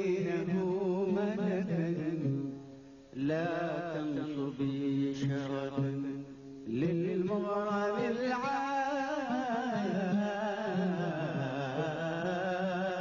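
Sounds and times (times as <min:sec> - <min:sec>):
man singing long ornamented notes: 0:00.0 - 0:13.0.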